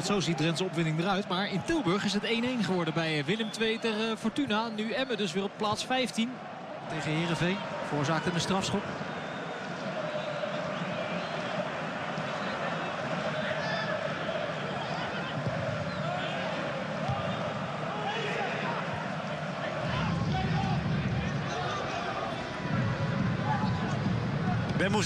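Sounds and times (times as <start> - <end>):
players shouting: 0.0 - 25.0.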